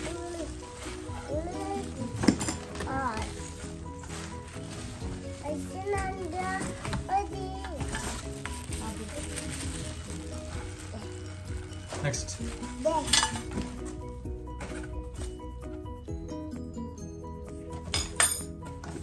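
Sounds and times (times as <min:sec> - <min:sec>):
plastic wrapping rustling: 0:00.0 - 0:15.5
background music: 0:00.0 - 0:19.0.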